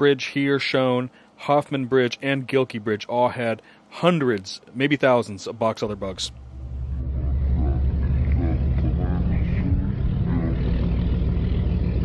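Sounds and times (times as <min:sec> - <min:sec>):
low rumble: 0:05.9 - 0:12.0.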